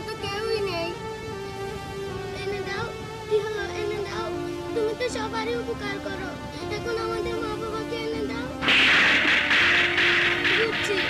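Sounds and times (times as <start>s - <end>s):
wavering background music: 0.0s - 11.0s.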